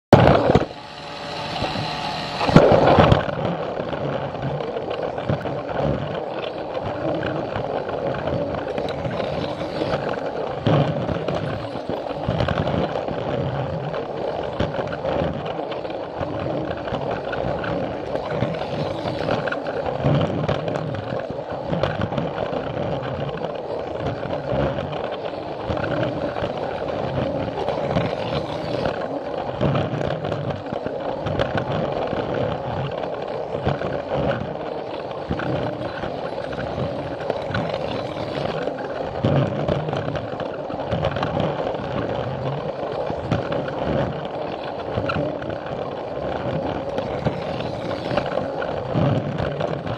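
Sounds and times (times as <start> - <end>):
plastic wheels rolling on rails: 0.1 - 49.9
toy train motor whirring: 0.2 - 3.7, 6.3 - 13.2, 14.0 - 20.0, 23.3 - 31.2, 33.0 - 39.2, 42.7 - 49.9.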